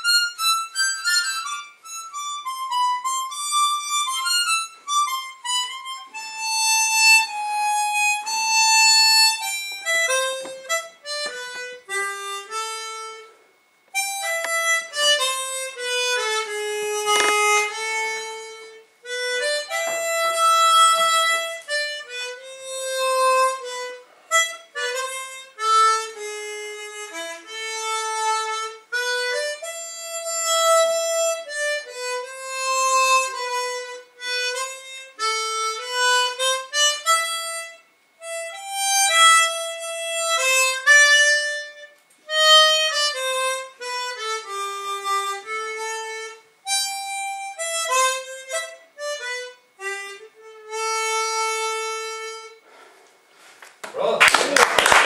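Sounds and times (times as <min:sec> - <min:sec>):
solo harmonica melody: 0:00.0 - 0:53.6.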